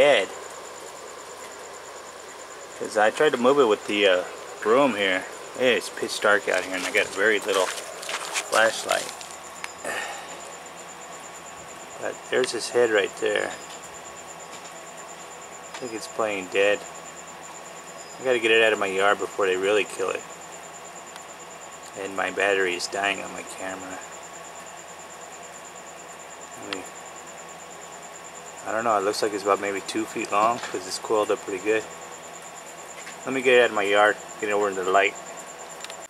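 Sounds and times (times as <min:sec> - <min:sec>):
background hiss: 0:00.0 - 0:36.0
cricket chirping: 0:00.0 - 0:36.0
faint low hum: 0:00.0 - 0:36.0
high insect trill: 0:00.0 - 0:36.0.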